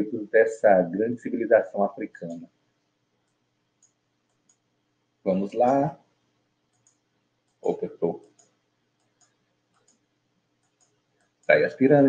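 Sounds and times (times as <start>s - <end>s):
computer mouse clicks: 3.2s - 4.7s, 6.7s - 11.6s.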